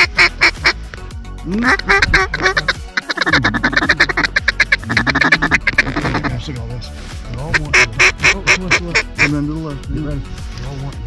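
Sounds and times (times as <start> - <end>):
duck quacking rapidly: 0.0 - 0.8, 1.5 - 6.4, 7.5 - 9.3
background music: 0.0 - 11.0.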